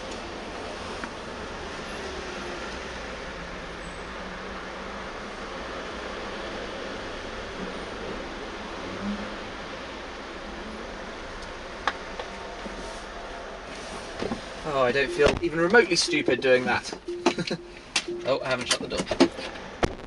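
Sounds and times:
car park background noise: 0:00.0 - 0:20.0.

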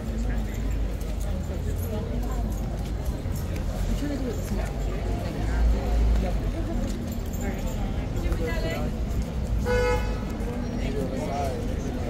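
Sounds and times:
street traffic rumble: 0:00.0 - 0:12.0
vehicle horn toot: 0:09.6 - 0:10.2.

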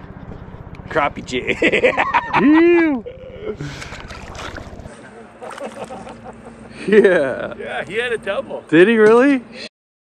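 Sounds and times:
steady low hum: 0:00.0 - 0:09.7.

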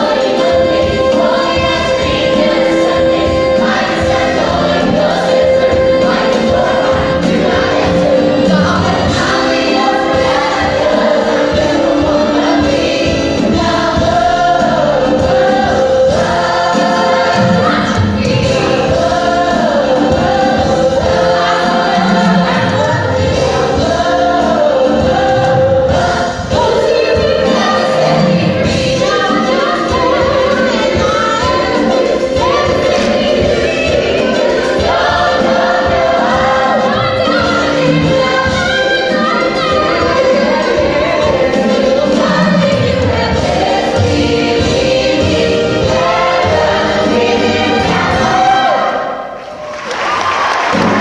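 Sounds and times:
cast singing in chorus: 0:00.0 - 0:49.4
band accompaniment: 0:00.0 - 0:51.0
pit orchestra: 0:00.0 - 0:51.0.

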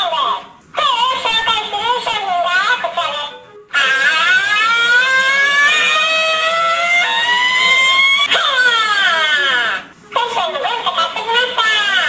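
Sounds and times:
high-pitched wailing voice: 0:00.8 - 0:09.8.

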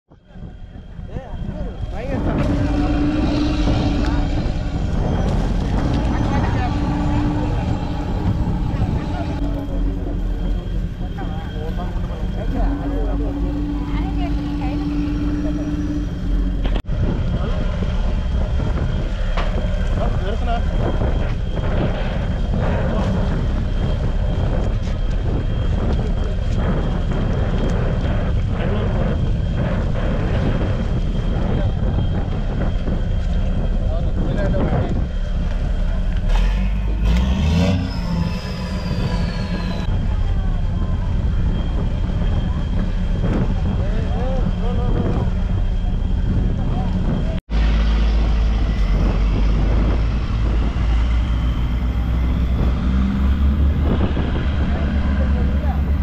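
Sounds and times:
low droning hum: 0:00.1 - 0:56.0
steady low rumble: 0:00.1 - 0:56.0
people talking: 0:00.2 - 0:19.0, 0:19.6 - 0:47.4, 0:48.1 - 0:56.0.

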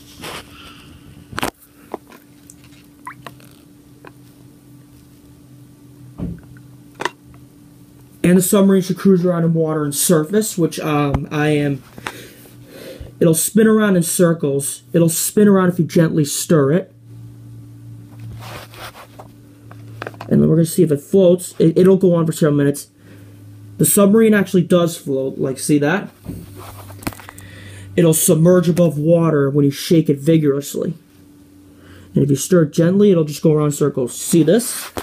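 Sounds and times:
faint steady hum: 0:00.0 - 0:35.0
water dripping and splashing in bowl: 0:02.4 - 0:03.4.

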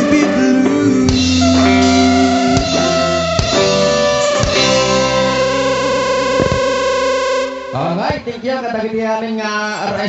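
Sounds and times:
drum hit: 0:01.1 - 0:06.9
band closing chord: 0:01.1 - 0:08.3.

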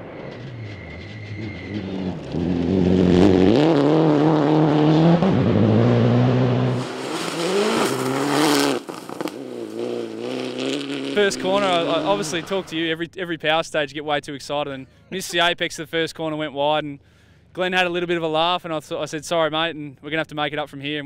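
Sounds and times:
rally car engine at full throttle: 0:00.0 - 0:12.8
car passing rush: 0:00.0 - 0:12.9.

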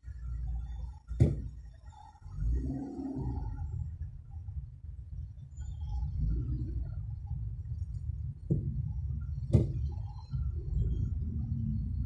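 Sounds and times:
car engine rumble and road noise: 0:00.0 - 0:12.0.

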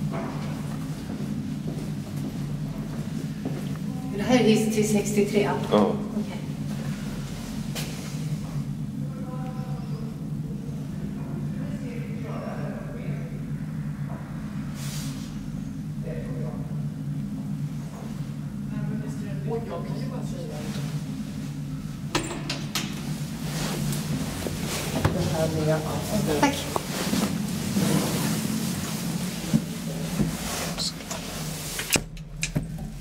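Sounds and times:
elevator machinery humming: 0:00.0 - 0:33.0.

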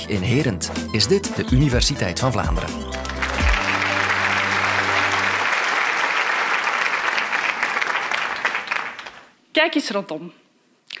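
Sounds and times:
held music chord: 0:00.7 - 0:05.7
audience applauding: 0:02.5 - 0:09.3.

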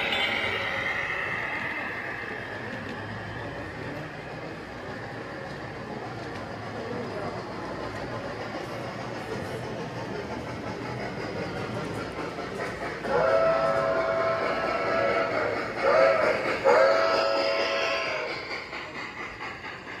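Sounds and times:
model train wheels rumbling on track: 0:00.0 - 0:20.0
model train chime whistle: 0:13.1 - 0:18.3.

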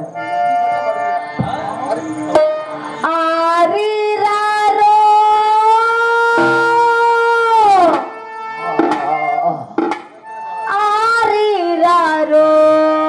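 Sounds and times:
woman singing into a microphone: 0:03.0 - 0:08.1, 0:10.6 - 0:13.0.

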